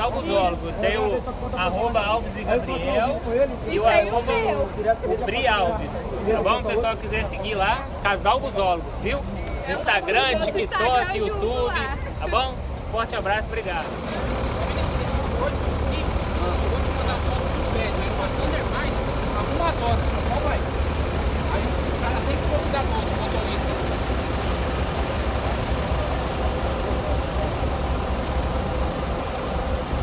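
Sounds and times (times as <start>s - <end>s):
people talking: 0.0s - 29.4s
diesel buses idling: 0.0s - 30.0s.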